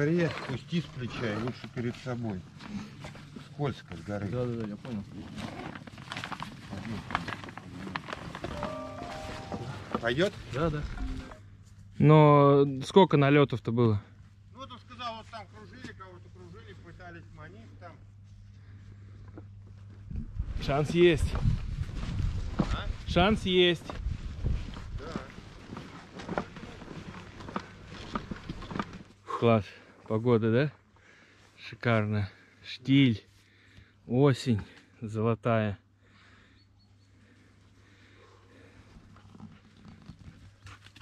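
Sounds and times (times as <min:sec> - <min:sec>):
steady pitched tone: 0:08.5 - 0:11.4
footsteps on a dirt track: 0:19.7 - 0:29.1.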